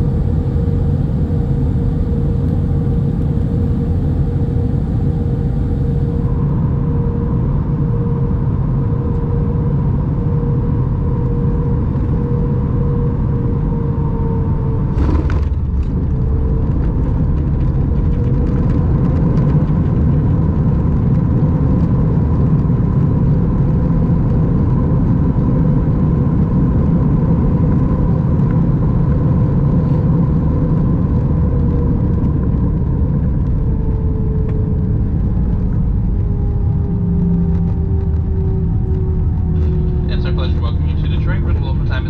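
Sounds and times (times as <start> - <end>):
airframe and wheels rumbling: 0.0 - 6.4, 14.8 - 21.4, 32.0 - 42.0
jet engines whining: 0.0 - 6.6, 36.0 - 42.0.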